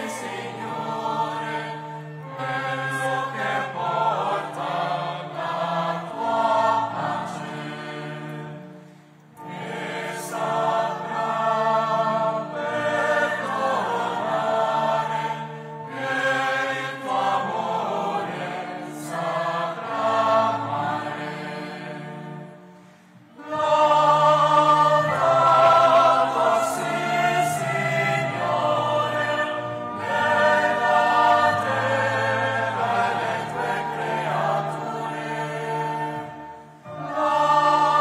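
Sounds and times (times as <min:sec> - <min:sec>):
choir singing a chant: 0:00.0 - 0:22.6, 0:23.3 - 0:38.0.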